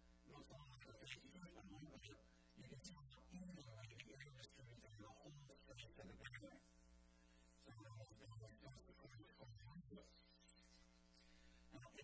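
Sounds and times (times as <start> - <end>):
faint man talking: 0.3 - 6.6, 7.6 - 10.3, 11.7 - 12.0.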